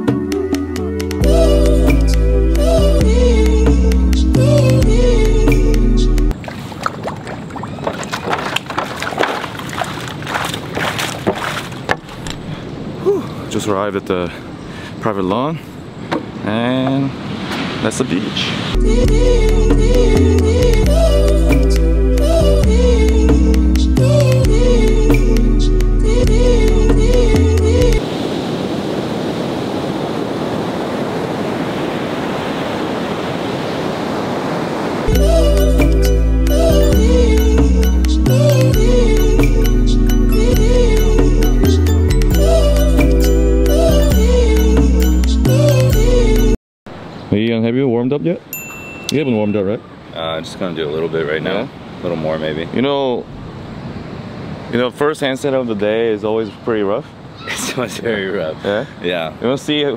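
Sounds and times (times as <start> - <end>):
music: 0.0 - 6.3, 18.8 - 28.0, 35.1 - 46.6
ocean surf breaking: 6.3 - 18.8, 28.0 - 35.4, 48.5 - 59.9
footsteps on wooden boardwalk: 6.4 - 12.4
wind on microphone: 27.8 - 35.4.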